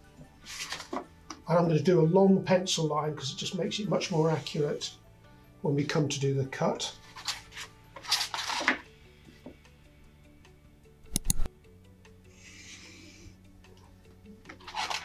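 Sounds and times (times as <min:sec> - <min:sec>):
soft background music: 0:00.0 - 0:15.0.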